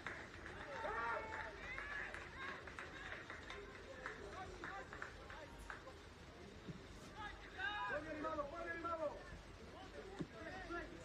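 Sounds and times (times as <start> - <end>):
open-air background noise: 0.0 - 11.0.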